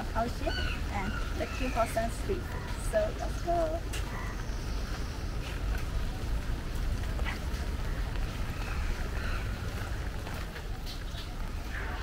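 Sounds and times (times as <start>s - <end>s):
outdoor ambience hiss: 0.0s - 12.0s.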